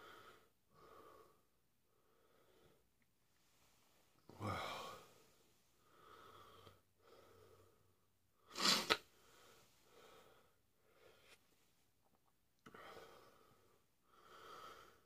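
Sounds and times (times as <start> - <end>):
man breathing: 0.0 - 8.0, 9.1 - 11.4, 12.6 - 15.0.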